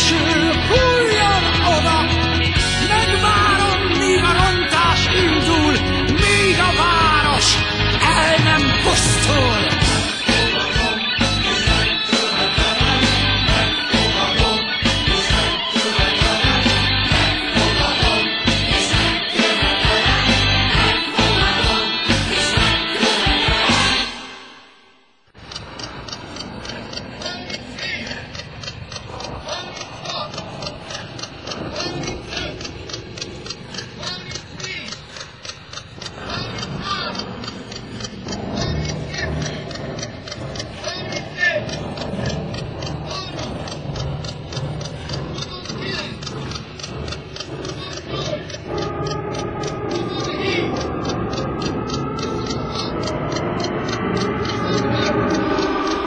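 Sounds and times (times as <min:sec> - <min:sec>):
rapid mechanical clicking: 0:00.0 - 0:24.5, 0:25.3 - 0:56.0
rock music: 0:00.0 - 0:24.6
faint voices: 0:25.8 - 0:51.1.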